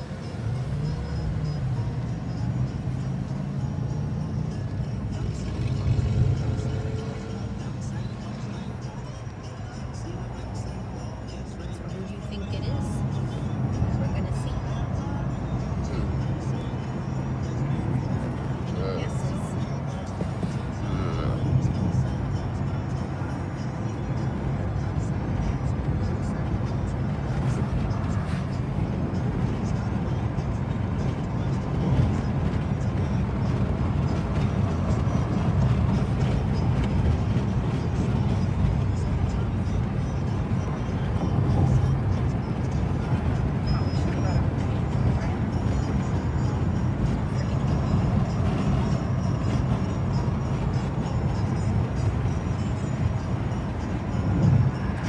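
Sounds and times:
car cabin road noise: 0.0 - 55.0
car radio music and voices: 0.0 - 55.0.

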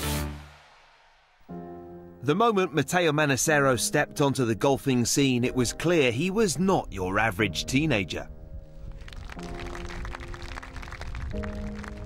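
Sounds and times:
background music with beat: 0.0 - 2.1.

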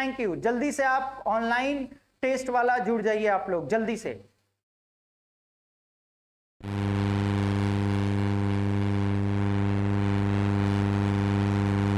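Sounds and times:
low electronic buzz: 6.6 - 11.9.

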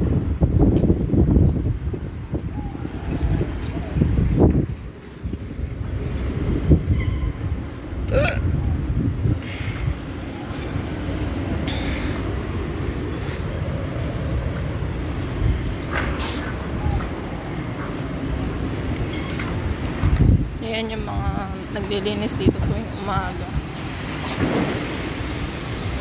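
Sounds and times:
city traffic: 0.0 - 26.0
wind on microphone: 0.0 - 26.0.

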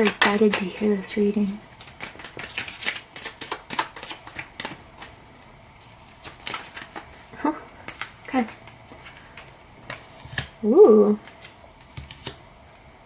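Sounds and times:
cards being shuffled: 0.0 - 5.2, 5.8 - 12.4.

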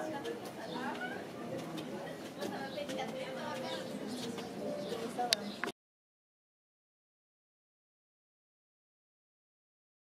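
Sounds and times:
indistinct voices: 0.0 - 5.7
bird calls: 0.6 - 5.7.

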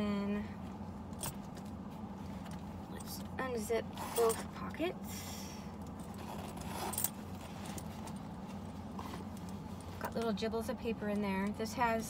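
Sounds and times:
steady low hum: 0.0 - 12.0
handbag rustling: 5.9 - 10.1.

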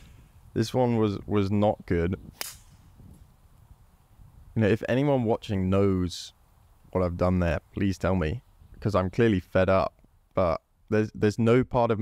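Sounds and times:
golf club striking ball: 2.4 - 3.2.

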